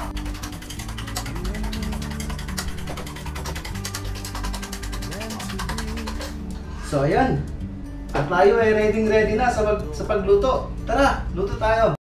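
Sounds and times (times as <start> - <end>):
utensil clicking against bowl: 0.0 - 6.4
background music with low notes: 0.0 - 12.0.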